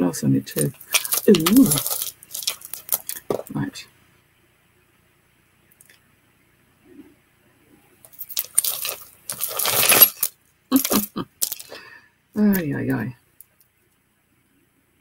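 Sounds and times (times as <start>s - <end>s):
jewellery clinking and rattling: 0.6s - 3.5s, 8.1s - 11.8s.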